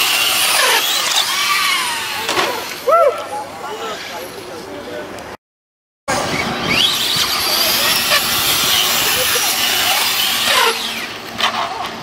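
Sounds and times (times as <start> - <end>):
rc truck motors whining: 0.0 - 3.0, 6.1 - 12.0.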